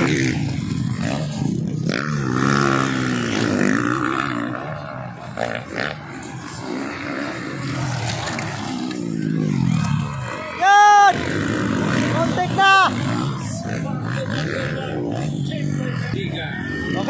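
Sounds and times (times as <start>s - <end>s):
dirt bike engines revving: 0.0s - 17.0s.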